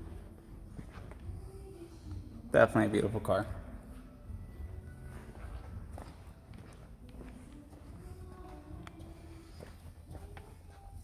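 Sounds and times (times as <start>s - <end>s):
faint footsteps: 0.0s - 2.3s, 3.7s - 11.0s.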